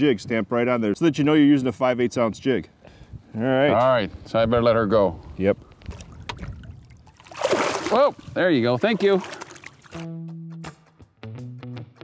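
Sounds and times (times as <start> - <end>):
fish splashing in water: 5.9 - 10.1.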